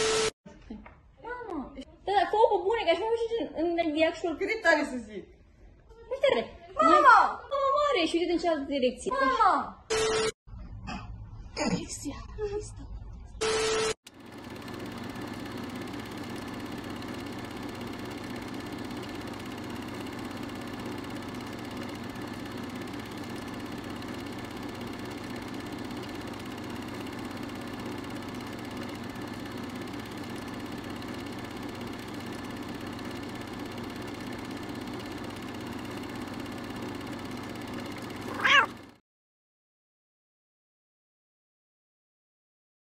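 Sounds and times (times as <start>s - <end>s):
cat meowing: 38.3s - 38.8s.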